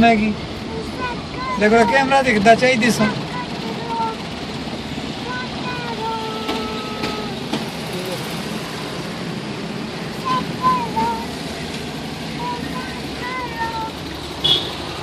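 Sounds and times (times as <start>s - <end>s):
vehicle engine and road noise: 0.0s - 15.0s
faint voices: 5.2s - 8.8s.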